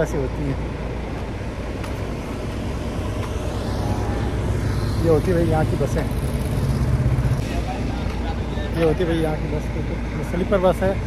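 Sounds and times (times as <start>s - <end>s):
low rumble of traffic: 0.0s - 11.0s.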